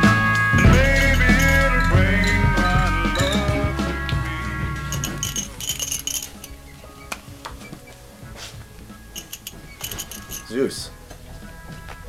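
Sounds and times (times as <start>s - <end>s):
music: 0.0s - 12.0s
small hard objects clinking: 4.9s - 6.7s, 9.2s - 11.2s.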